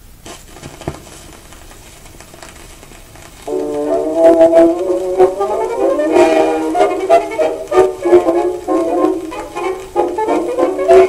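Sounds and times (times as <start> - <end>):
record surface hiss: 0.0 - 11.0
record crackles and ticks: 0.1 - 11.0.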